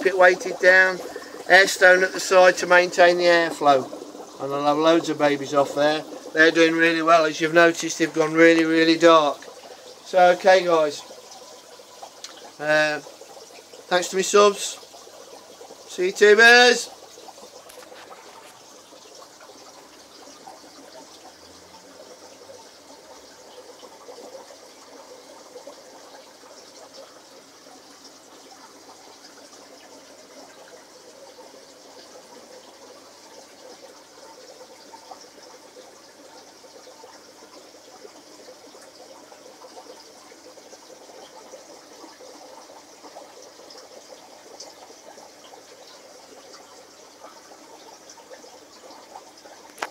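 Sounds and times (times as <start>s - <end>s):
aquarium water bubbling: 0.0s - 49.9s.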